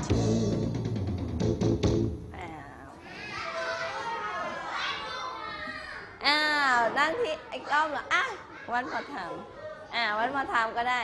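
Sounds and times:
young children chattering: 2.8 - 11.0.

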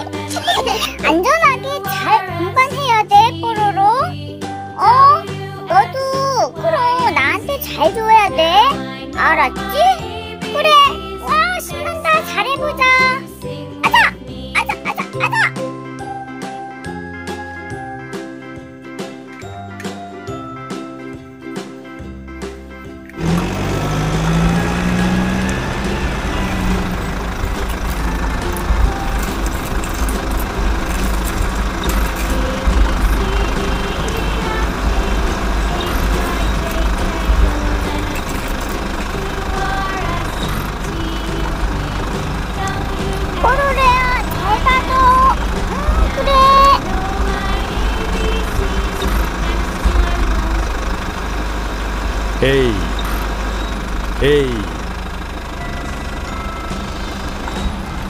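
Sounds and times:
engine-like rumble: 0.0 - 16.2, 22.2 - 58.0
squeaky voice-like glides: 13.8 - 15.6.

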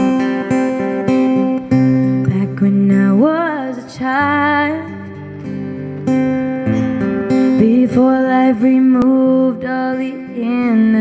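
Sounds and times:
acoustic guitar strumming: 0.0 - 11.0
woman singing wordless phrase: 2.3 - 5.2, 7.6 - 11.0.

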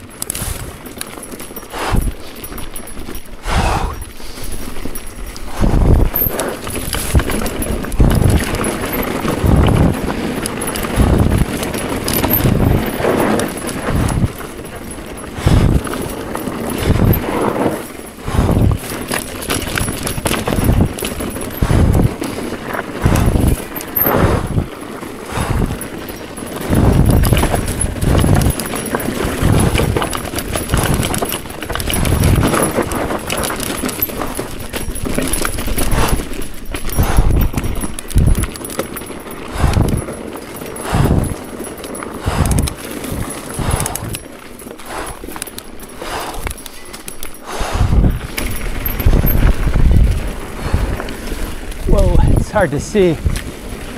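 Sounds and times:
mountain bike jolting over rocks: 0.0 - 53.9.

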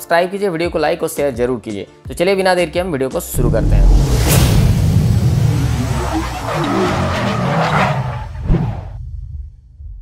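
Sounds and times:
car tyres squealing: 5.7 - 9.0.

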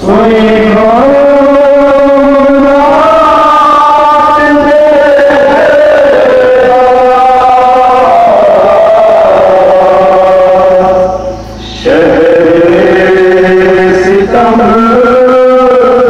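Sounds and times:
men chanting a lament: 0.0 - 16.0.

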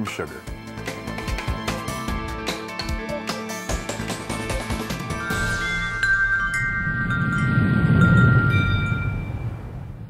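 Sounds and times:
ringing chime tones: 5.0 - 9.6
low whoosh: 5.6 - 10.0.

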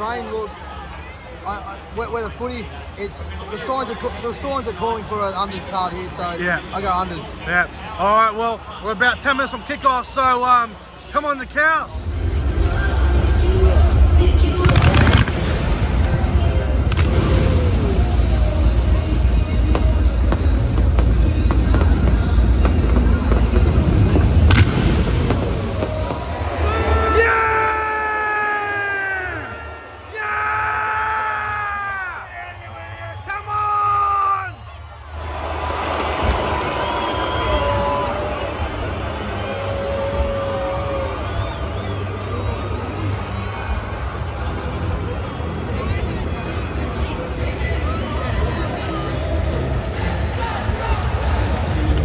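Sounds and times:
loud crowd noise: 0.0 - 52.0
bass-heavy music over loudspeakers: 12.0 - 27.0, 38.8 - 52.0
pyrotechnic bangs: 14.6 - 18.5, 19.6 - 26.6.

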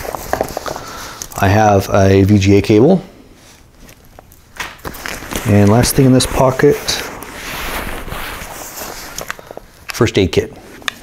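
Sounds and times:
backpack fabric rustling: 3.4 - 9.9.

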